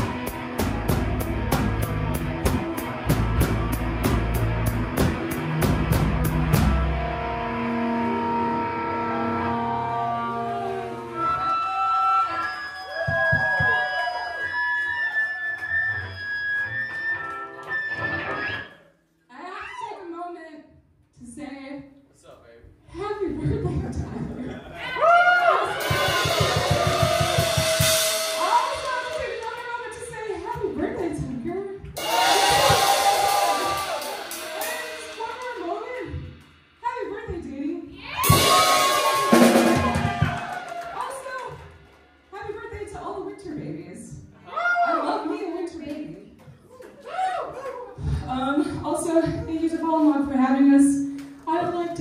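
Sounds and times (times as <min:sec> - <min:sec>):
drum hits: 0:00.0 - 0:07.1, 0:25.8 - 0:31.4, 0:32.0 - 0:43.1
rock band chord ringing: 0:00.0 - 0:11.3, 0:25.8 - 0:30.0, 0:32.0 - 0:36.8, 0:38.2 - 0:40.5
cymbal crashes: 0:25.8 - 0:29.4, 0:32.0 - 0:37.0, 0:38.1 - 0:40.3.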